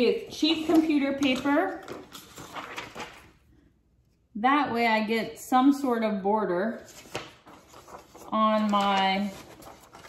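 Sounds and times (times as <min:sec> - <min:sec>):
paper rustling: 0:00.2 - 0:03.5, 0:06.8 - 0:10.0.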